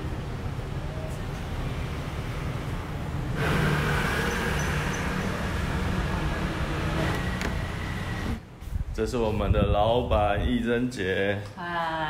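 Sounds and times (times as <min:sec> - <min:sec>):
road traffic rumble and hiss: 0:00.0 - 0:12.0.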